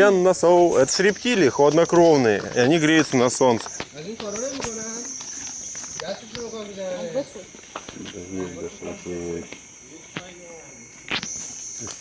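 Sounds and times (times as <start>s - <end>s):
high-pitched insect buzz: 0.0s - 12.0s
indistinct voices talking: 0.0s - 12.0s.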